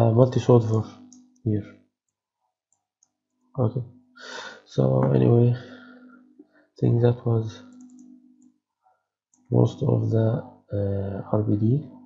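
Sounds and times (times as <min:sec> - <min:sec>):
computer mouse clicks: 0:07.6 - 0:08.6.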